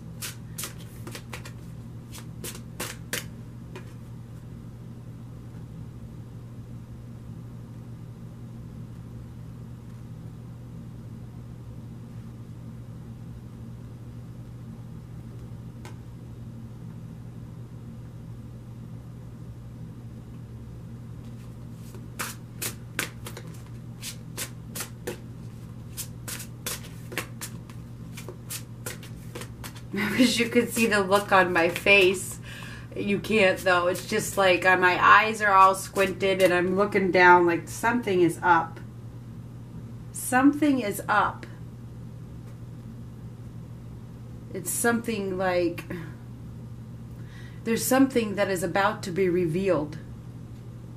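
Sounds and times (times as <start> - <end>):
low steady hum: 0.0 - 50.9
cards being shuffled: 0.1 - 4.1, 21.2 - 32.3, 33.3 - 34.6, 35.6 - 36.8.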